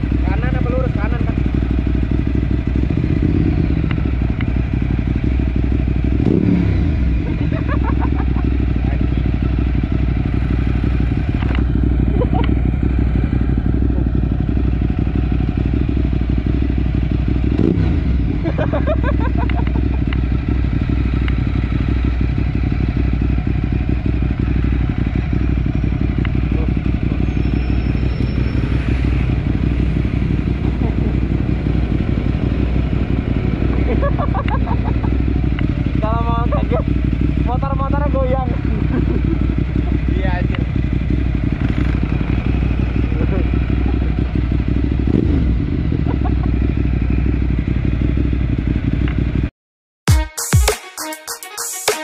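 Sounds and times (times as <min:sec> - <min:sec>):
motorcycle idling: 0:00.0 - 0:49.5.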